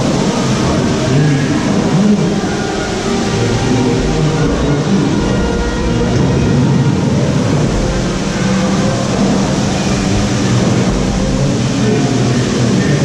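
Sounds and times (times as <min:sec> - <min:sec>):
low held tones: 0:00.0 - 0:13.0
ride boat machinery rumbling: 0:00.0 - 0:13.0.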